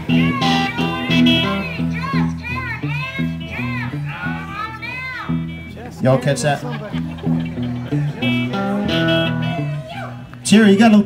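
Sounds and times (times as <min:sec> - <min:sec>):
cigar box guitar riff: 0:00.0 - 0:11.0
high child-like voice singing: 0:00.1 - 0:05.4.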